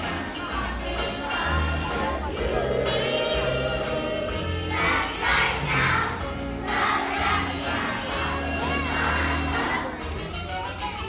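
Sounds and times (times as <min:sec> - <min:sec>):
backing music: 0:00.0 - 0:11.0
children's choir shouting and singing: 0:00.0 - 0:11.0.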